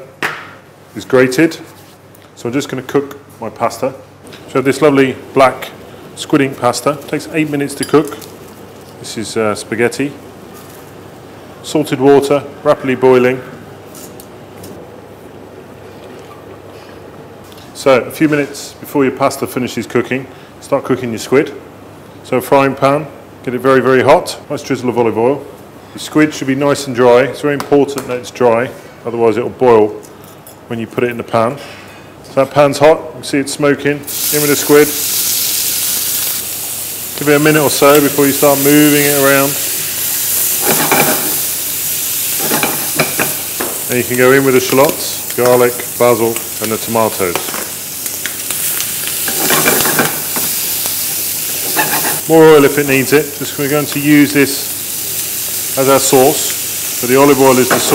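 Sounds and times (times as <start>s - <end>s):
squid sizzling in frying pan: 34.1s - 57.9s.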